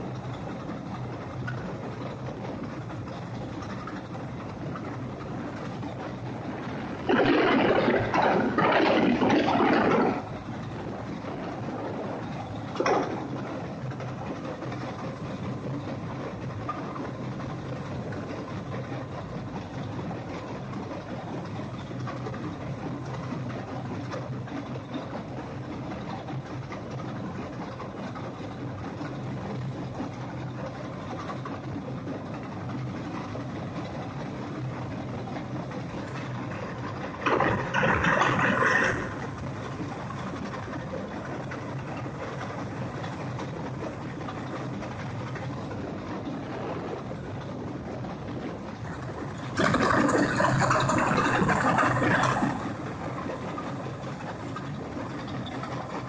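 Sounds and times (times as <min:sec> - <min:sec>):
diesel engine under load: 0:00.0 - 0:56.0.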